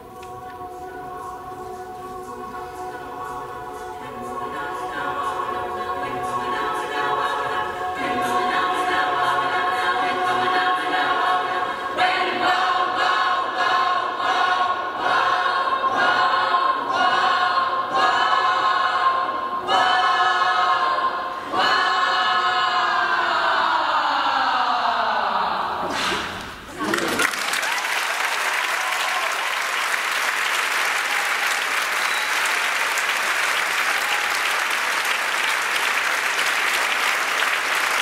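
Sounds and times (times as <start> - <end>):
choir singing a cappella: 0.0 - 26.6.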